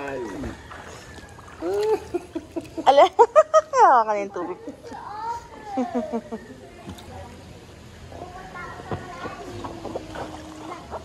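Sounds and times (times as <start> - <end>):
pool water splashing: 0.0 - 11.0.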